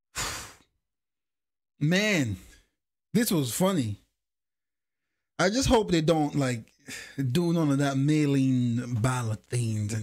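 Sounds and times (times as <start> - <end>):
man speaking: 5.4 - 10.0.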